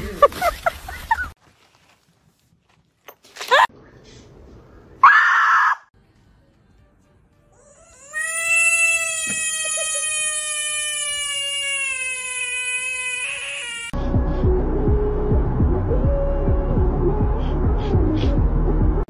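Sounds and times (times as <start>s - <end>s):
music: 6.0s - 7.8s, 14.0s - 19.0s.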